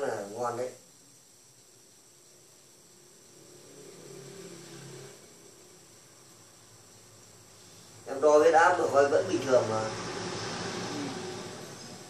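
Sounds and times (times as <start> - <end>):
faint high hiss: 0.0 - 12.0.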